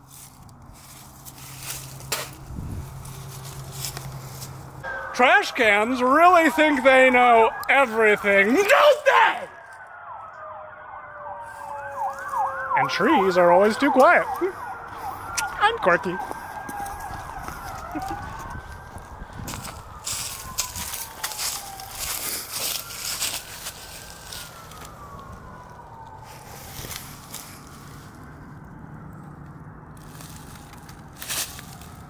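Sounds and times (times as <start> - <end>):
distant siren yelping: 2.0 - 30.0
steady falling tone: 4.8 - 15.4.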